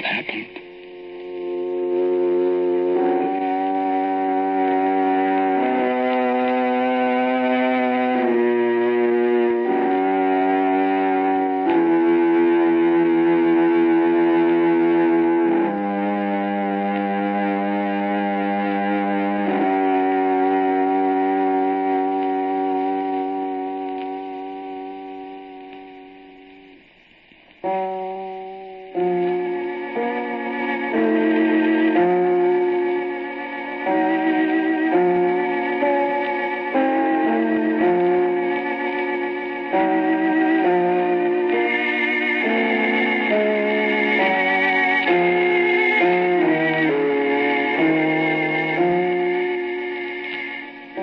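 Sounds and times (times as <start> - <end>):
theatre organ chords: 0.0 - 26.5, 27.6 - 51.0.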